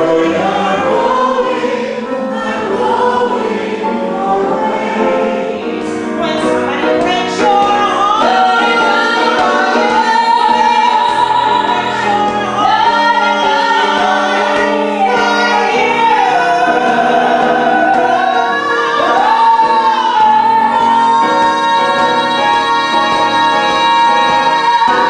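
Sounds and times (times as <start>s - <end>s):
two women singing in harmony: 0.0s - 25.0s.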